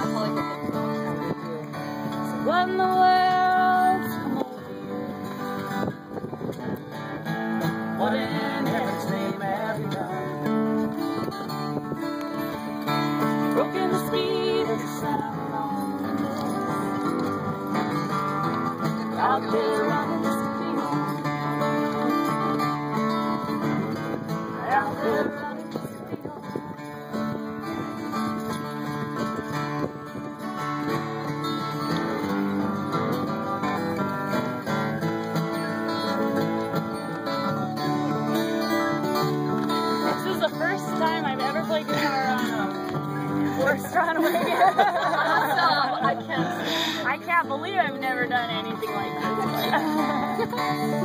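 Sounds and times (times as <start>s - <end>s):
acoustic guitar strumming: 0.0s - 51.0s.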